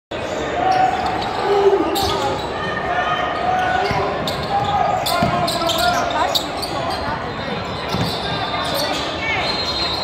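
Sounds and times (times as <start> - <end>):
unclear voices: 0.2 - 10.0.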